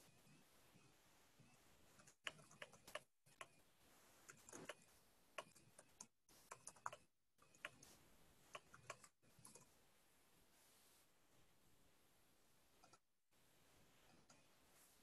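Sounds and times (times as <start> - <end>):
faint keyboard typing: 0.0 - 9.8, 12.8 - 13.1, 14.1 - 14.5.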